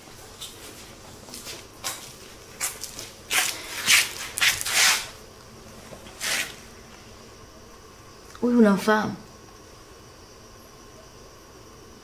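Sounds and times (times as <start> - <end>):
rustling scraping noises: 0.3 - 6.7.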